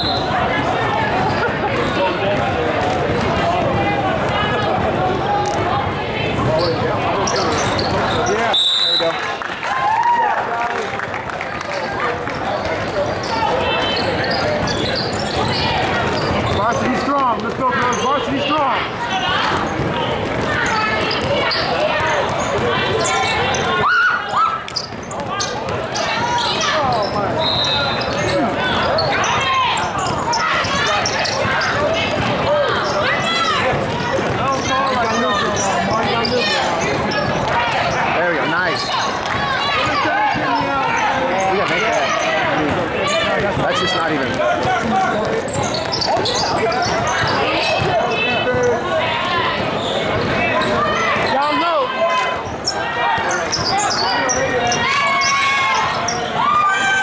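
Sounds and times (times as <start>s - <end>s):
overlapping indistinct voices: 0.0s - 57.0s
basketball bouncing on court: 12.3s - 23.8s, 27.9s - 38.0s, 42.6s - 51.4s.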